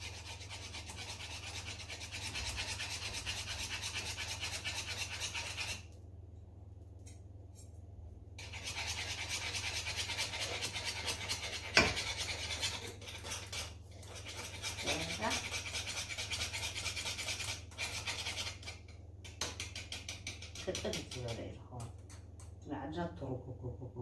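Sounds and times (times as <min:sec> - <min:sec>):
utensil scraping a saucepan: 0:00.0 - 0:05.8, 0:08.4 - 0:21.5.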